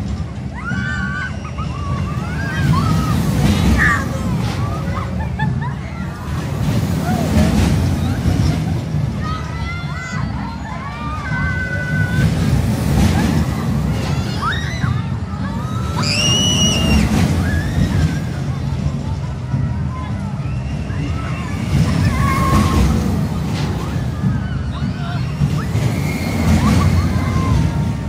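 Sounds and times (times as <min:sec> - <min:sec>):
heavy low rumble: 0:01.8 - 0:28.0
loud high scream: 0:15.6 - 0:18.1.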